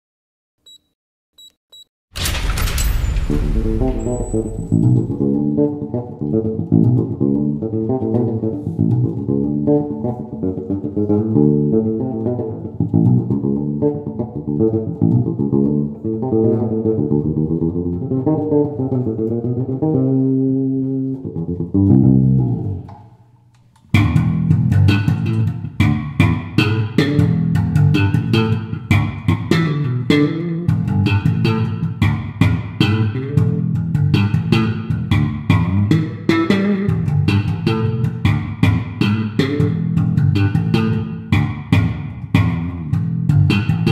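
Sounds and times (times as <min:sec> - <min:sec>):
bass guitar notes plucked: 0:03.0 - 0:22.9, 0:23.9 - 0:43.9.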